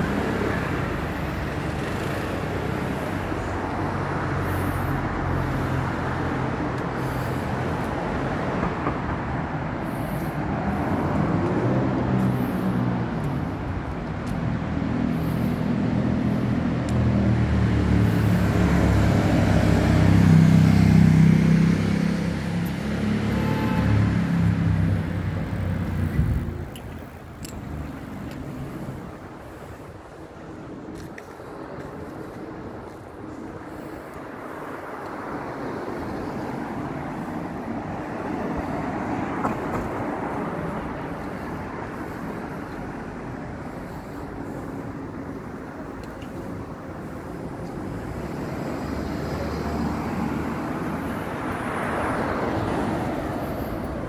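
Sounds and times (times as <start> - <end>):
road traffic passing: 0.0 - 54.0.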